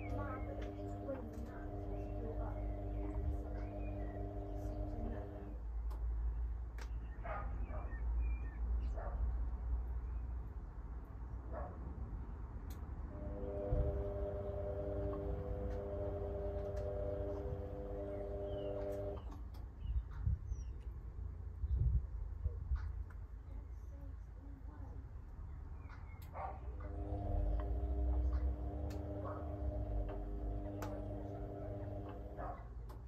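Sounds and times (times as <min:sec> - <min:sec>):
washing machine motor whine: 0:00.0 - 0:05.6, 0:13.1 - 0:19.3, 0:26.7 - 0:32.6
low rumble: 0:13.1 - 0:19.2.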